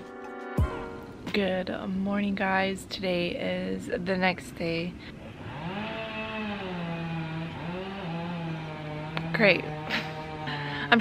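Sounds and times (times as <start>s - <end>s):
motor engine running: 5.3s - 11.0s.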